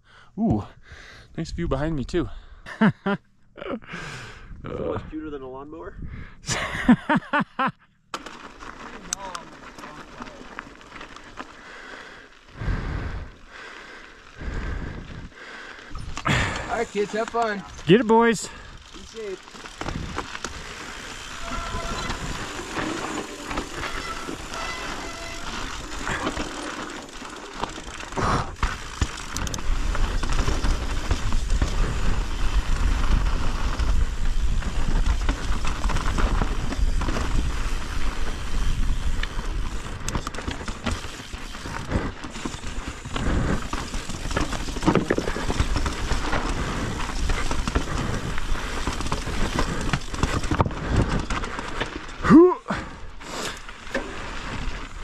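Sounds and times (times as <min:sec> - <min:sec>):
bike rattling: 0:08.0 - 0:55.0
bike tyres rolling over gravel: 0:08.1 - 0:55.0.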